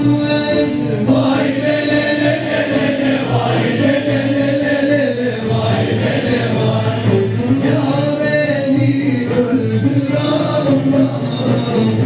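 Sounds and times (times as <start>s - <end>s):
instruments accompanying: 0.0s - 12.0s
choir singing long held notes: 1.2s - 7.5s.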